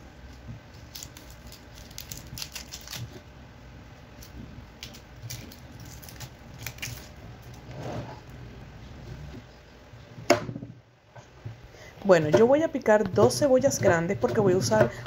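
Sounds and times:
onion skin crackling: 0:00.2 - 0:03.3, 0:03.9 - 0:07.6.

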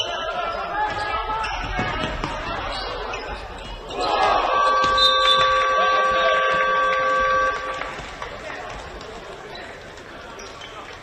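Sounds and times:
scoreboard buzzer blaring: 0:04.5 - 0:07.9.

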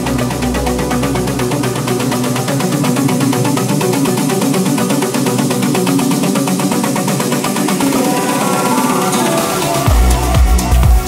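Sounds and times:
electronic dance beat: 0:00.0 - 0:11.0.

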